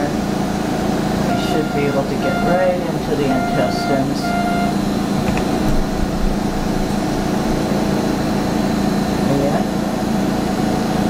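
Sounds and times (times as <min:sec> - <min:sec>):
low mechanical hum: 0:00.0 - 0:11.0
indistinct voices: 0:01.3 - 0:05.2.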